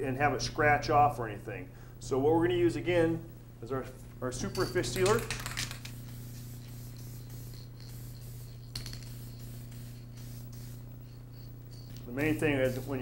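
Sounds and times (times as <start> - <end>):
low steady hum: 0.0 - 13.0
aerosol can spraying hiss: 5.0 - 13.0.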